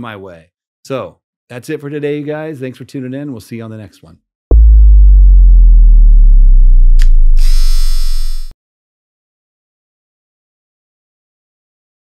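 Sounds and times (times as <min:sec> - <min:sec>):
bright buzzing high tone: 0:04.5 - 0:08.5
deep bass boom falling in pitch: 0:04.5 - 0:08.5
sharp click: 0:07.0 - 0:08.2.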